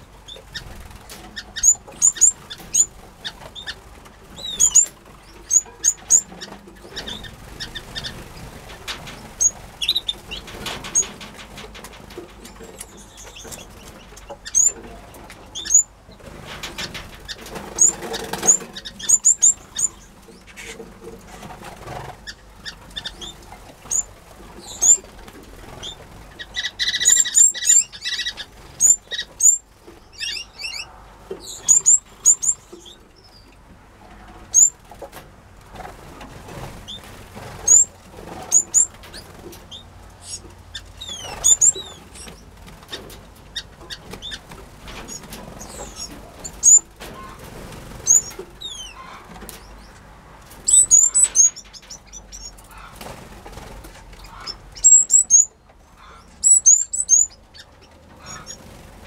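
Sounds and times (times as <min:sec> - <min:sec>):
wings fluttering: 0:00.2 - 0:30.8, 0:34.5 - 0:49.8, 0:50.5 - 0:55.4, 0:57.1 - 0:59.0
finches chirping: 0:01.4 - 0:08.4, 0:15.5 - 0:15.9, 0:17.2 - 0:20.1, 0:22.2 - 0:25.1, 0:25.7 - 0:33.5, 0:37.6 - 0:37.9, 0:38.5 - 0:39.0, 0:39.7 - 0:42.4, 0:45.1 - 0:46.9, 0:48.0 - 0:49.0, 0:50.6 - 0:52.6, 0:54.2 - 0:55.6, 0:56.2 - 0:58.6.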